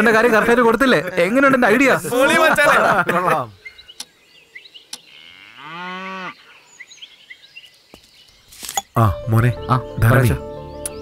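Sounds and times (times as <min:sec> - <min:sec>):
faint bird chirps: 0:03.5 - 0:05.5, 0:06.2 - 0:11.0
cow mooing: 0:05.1 - 0:06.6.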